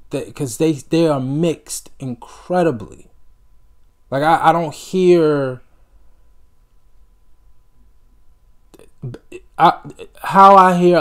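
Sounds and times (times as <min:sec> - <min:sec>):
person speaking: 0:00.0 - 0:03.2, 0:04.1 - 0:05.7, 0:08.8 - 0:11.0
low steady hum: 0:00.0 - 0:11.0
mouth sound: 0:08.7 - 0:10.2.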